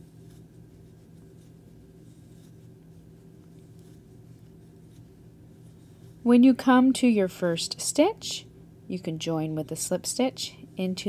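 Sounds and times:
yarn rustling on crochet hook: 0.0s - 8.4s, 9.1s - 11.0s
steady low hum: 0.0s - 11.0s.

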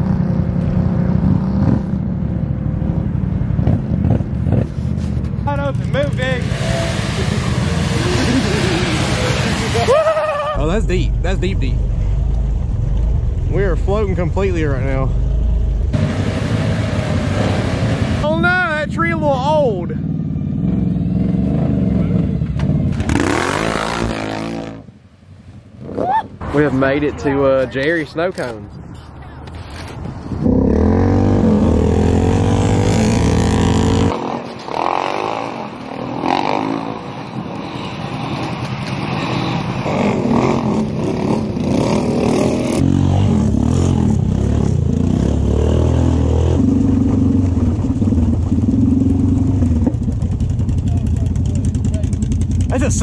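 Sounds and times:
atv engines revving: 0.0s - 24.9s, 29.6s - 53.0s.

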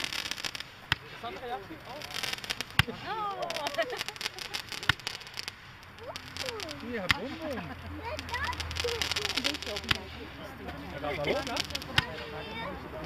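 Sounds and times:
fireworks cracking: 0.0s - 13.0s
fireworks crackling: 0.0s - 13.0s.

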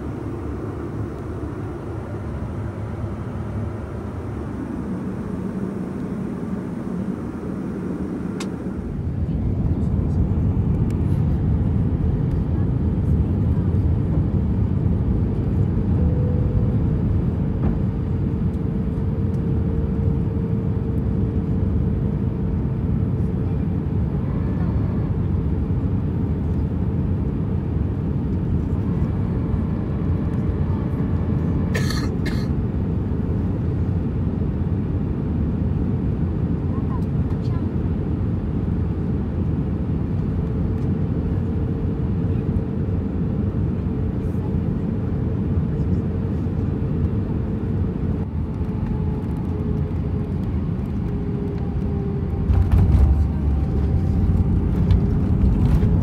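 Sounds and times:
jet engine cabin roar: 0.0s - 56.0s
click: 8.4s - 8.6s.

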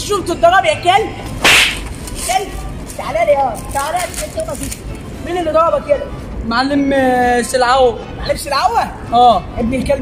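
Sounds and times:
whip-like crack: 1.4s - 2.0s.

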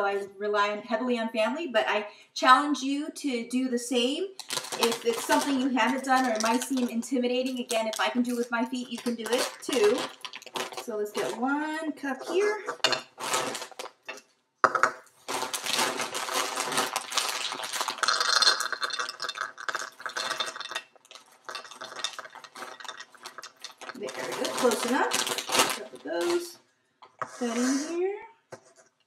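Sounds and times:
pretzels rattling into a cup: 4.4s - 11.4s, 13.1s - 14.2s, 15.2s - 26.5s
plastic bag rustling: 4.4s - 14.3s, 15.0s - 26.6s.

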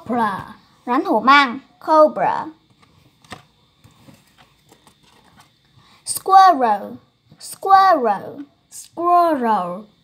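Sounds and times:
paper card clicks and taps: 2.7s - 5.5s.

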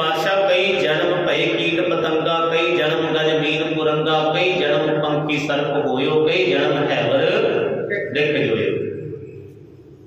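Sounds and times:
man chanting a hymn: 0.0s - 8.9s
steady low drone: 0.0s - 10.0s.

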